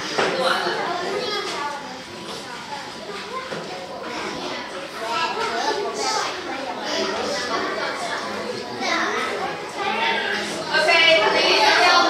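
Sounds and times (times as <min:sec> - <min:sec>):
children chattering: 0:00.0 - 0:12.0.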